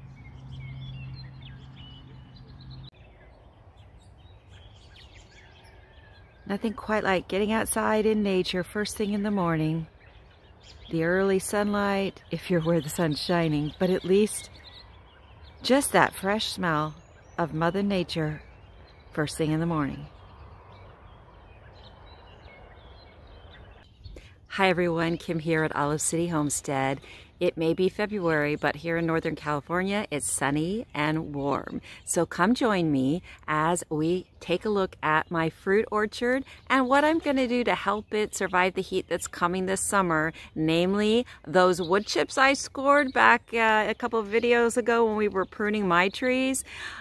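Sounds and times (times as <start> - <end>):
low outdoor background noise: 0.0 - 47.0
small birds chirping: 0.0 - 47.0.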